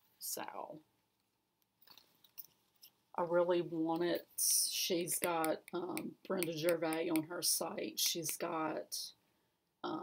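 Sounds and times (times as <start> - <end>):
threads rustling and clicking: 1.1 - 3.0.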